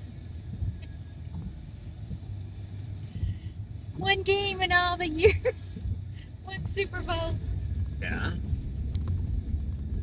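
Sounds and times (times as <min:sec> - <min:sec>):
car driving rumble from inside: 0:00.0 - 0:10.0.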